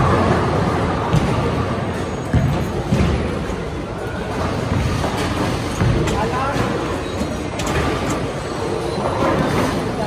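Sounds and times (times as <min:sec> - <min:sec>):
bowling balls rolling on lanes: 0:00.0 - 0:10.0
crowd chatter: 0:00.0 - 0:10.0.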